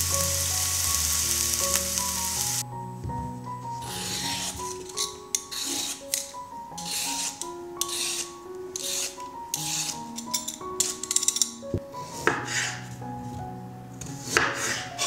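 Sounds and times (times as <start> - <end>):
peeler scraping carrot: 3.9 - 11.2.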